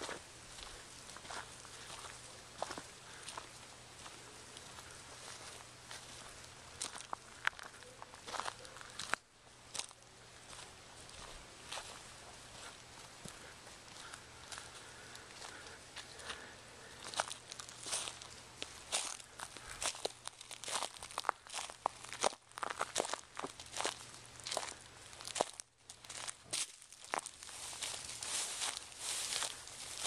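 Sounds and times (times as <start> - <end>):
dry leaves crunching: 0.0 - 30.0.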